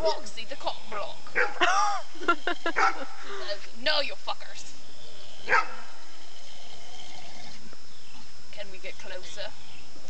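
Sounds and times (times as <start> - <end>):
dog barking: 1.4 - 1.7, 2.8 - 3.1, 5.4 - 5.9.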